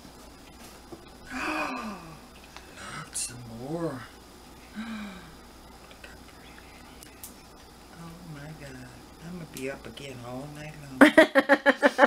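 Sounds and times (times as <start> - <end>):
breathy hiss: 1.2 - 3.2, 3.9 - 7.3
woman sighing ohh: 1.3 - 2.2, 4.7 - 5.4.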